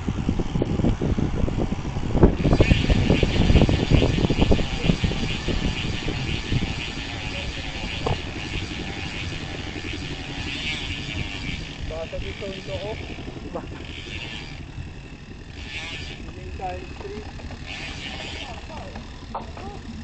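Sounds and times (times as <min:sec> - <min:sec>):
wind and road rumble: 0:00.0 - 0:20.0.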